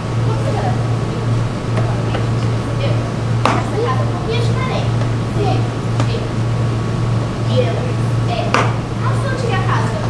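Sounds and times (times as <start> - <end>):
distant voices of actors: 0.0 - 10.0
steady low hum: 0.0 - 10.0
sharp tap: 3.4 - 3.7, 8.5 - 8.8.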